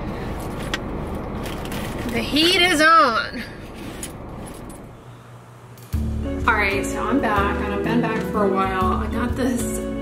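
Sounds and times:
car cabin engine noise: 0:00.0 - 0:05.1.

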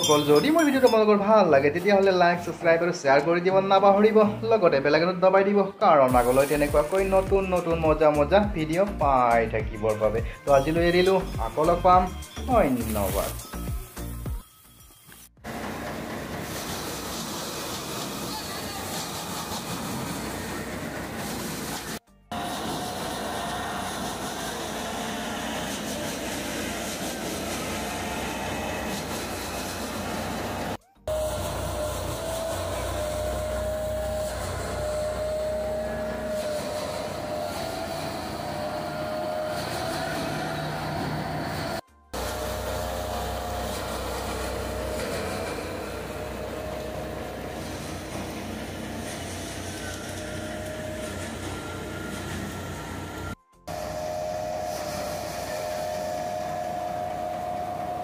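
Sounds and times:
thresher drum whining drone: 0:21.8 - 0:58.0
engine low hum: 0:27.8 - 0:58.0.

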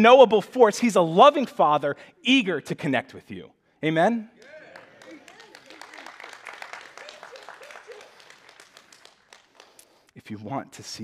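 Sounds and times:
congregation applauding: 0:04.4 - 0:10.1.

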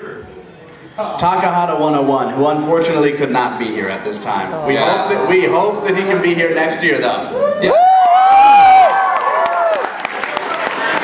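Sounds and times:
long whoops: 0:07.3 - 0:10.0
audience cheering: 0:07.3 - 0:11.0.

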